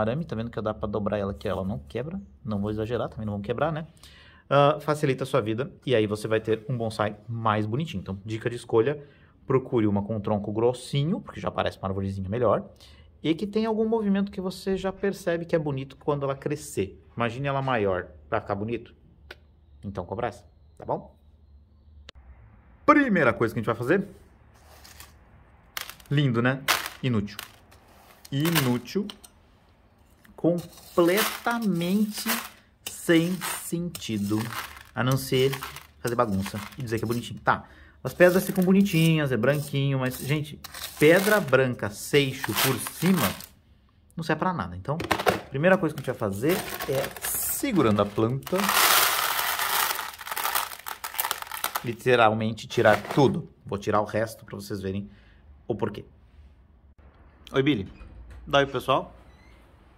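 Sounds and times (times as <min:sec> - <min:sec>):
pebbles rattling: 0:24.7 - 0:29.0, 0:30.6 - 0:37.3, 0:38.1 - 0:41.7, 0:42.3 - 0:43.5, 0:45.8 - 0:52.1, 0:52.8 - 0:53.4
pebbles rustling and clicking: 0:24.7 - 0:29.2, 0:30.6 - 0:37.3, 0:38.1 - 0:41.7, 0:42.3 - 0:43.6, 0:45.8 - 0:52.1, 0:52.8 - 0:53.3.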